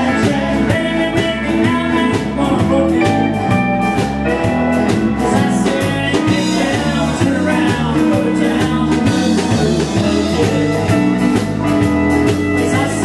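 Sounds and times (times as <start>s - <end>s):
live country band playing: 0.0s - 13.0s.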